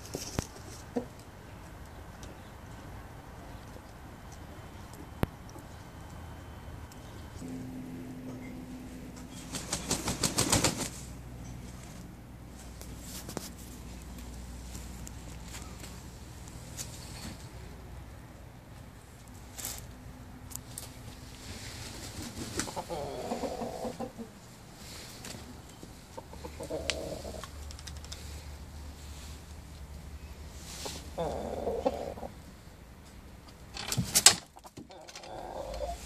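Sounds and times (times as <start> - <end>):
rooster flapping wings: 9.4 - 11.1, 21.8 - 22.9
rooster clucking low: 22.6 - 24.4, 26.1 - 27.5, 30.9 - 32.4, 34.9 - 36.0.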